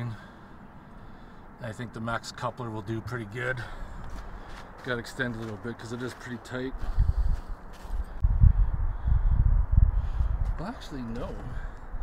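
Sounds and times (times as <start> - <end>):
wind buffeting microphone: 3.8 - 12.0.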